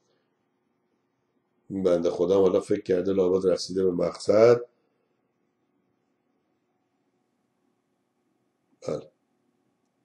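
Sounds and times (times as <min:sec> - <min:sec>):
man saying a word: 0:08.8 - 0:09.0.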